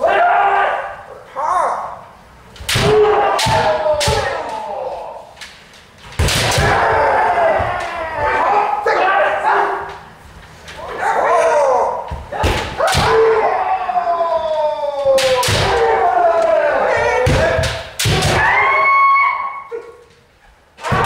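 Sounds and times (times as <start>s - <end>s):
people shouting: 0.0s - 2.0s, 2.7s - 5.4s, 6.2s - 10.0s, 10.8s - 20.0s, 20.8s - 21.0s
bamboo swords striking armour: 2.6s - 4.5s, 6.2s - 6.9s.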